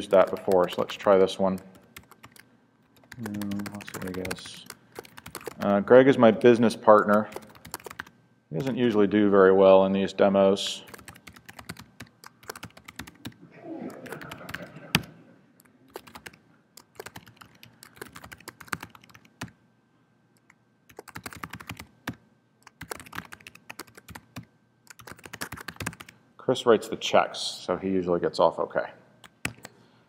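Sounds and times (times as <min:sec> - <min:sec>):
computer keyboard typing: 0:00.0 - 0:05.7, 0:06.9 - 0:08.8, 0:10.9 - 0:19.6, 0:20.4 - 0:26.2, 0:29.2 - 0:29.7.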